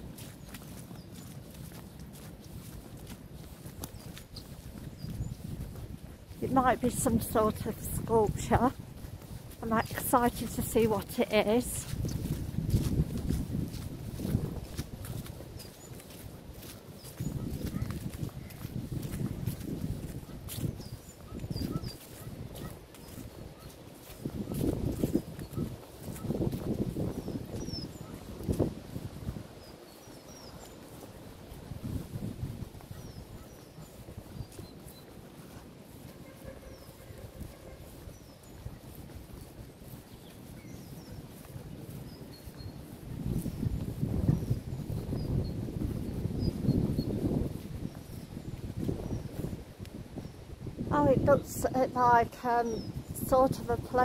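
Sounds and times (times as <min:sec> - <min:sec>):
footsteps on grass: 0:00.0 - 0:54.0
wind rumbling on microphone: 0:00.0 - 0:54.0
small birds chirping: 0:00.1 - 0:29.0, 0:29.6 - 0:31.6, 0:32.7 - 0:49.5, 0:51.1 - 0:54.0.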